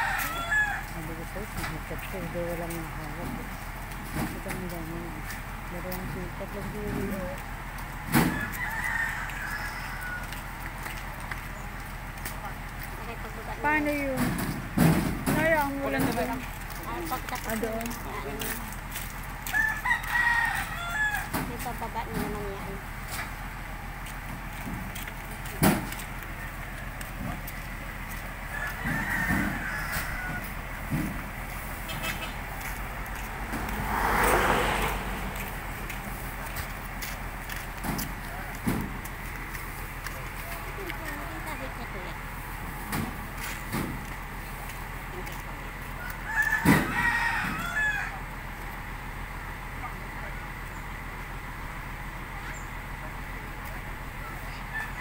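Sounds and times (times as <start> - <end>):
rooster crowing: 0.0 - 1.0, 8.3 - 10.4, 19.4 - 21.4, 28.5 - 30.6, 46.0 - 48.3, 54.6 - 55.0.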